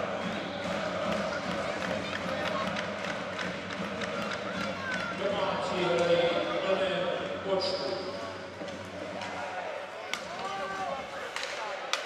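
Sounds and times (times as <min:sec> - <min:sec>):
murmur of crowd voices: 0:00.0 - 0:12.0
hockey sticks and puck clacking: 0:00.7 - 0:06.4, 0:08.5 - 0:12.0.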